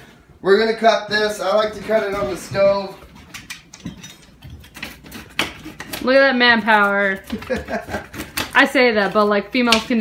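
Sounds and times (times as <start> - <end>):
pizza cutter clicking and scraping: 4.6 - 10.0.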